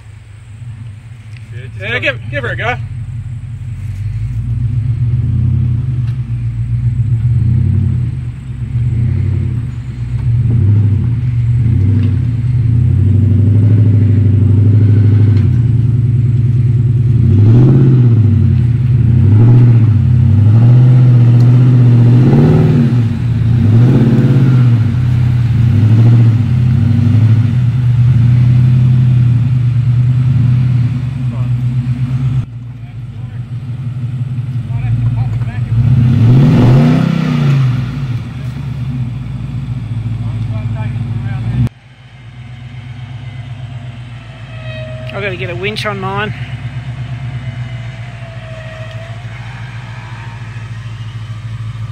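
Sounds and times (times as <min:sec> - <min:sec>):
engine revving under load: 0:00.6 - 0:32.5, 0:33.2 - 0:51.9.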